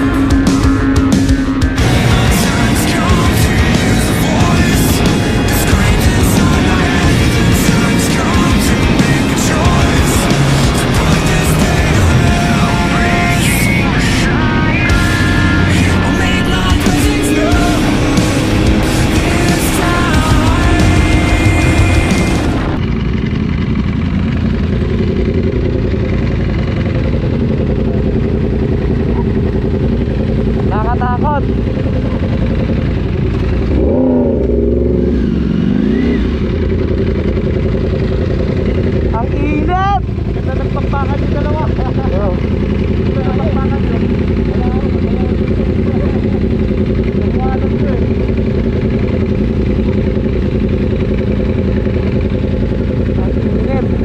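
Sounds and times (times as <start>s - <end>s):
motorcycle engine idling: 0.0s - 54.0s
second motorcycle idling: 0.0s - 54.0s
people talking: 1.8s - 22.2s, 30.6s - 31.6s, 39.1s - 48.2s, 53.1s - 54.0s.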